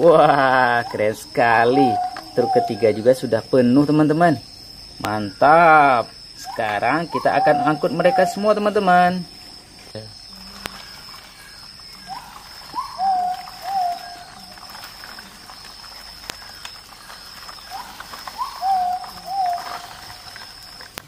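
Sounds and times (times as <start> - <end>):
animal hooting call: 0.0 - 3.2, 5.3 - 9.2, 10.3 - 15.6, 17.6 - 20.8.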